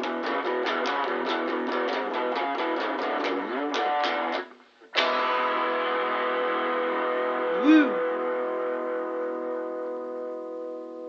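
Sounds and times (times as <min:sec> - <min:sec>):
guitar chord ringing: 0:05.0 - 0:11.0.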